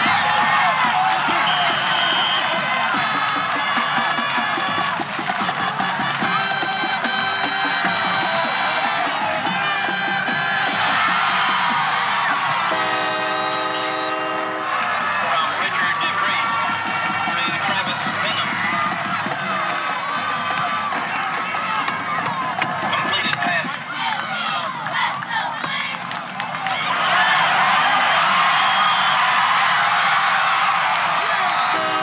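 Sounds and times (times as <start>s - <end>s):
crowd noise in stands: 0.0s - 32.0s
brass held notes: 6.2s - 16.3s, 31.7s - 32.0s
long horn note: 12.7s - 14.8s, 31.7s - 32.0s.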